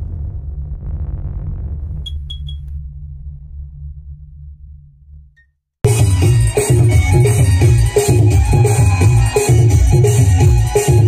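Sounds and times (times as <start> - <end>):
deep low drone: 0.0 - 5.4.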